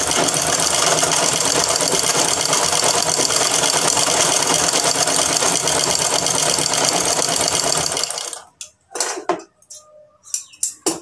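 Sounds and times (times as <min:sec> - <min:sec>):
sewing machine stitching: 0:00.0 - 0:08.5.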